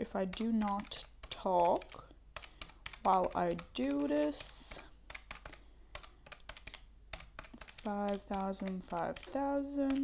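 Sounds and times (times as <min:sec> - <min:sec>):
calculator keys clicking: 0:00.2 - 0:10.0.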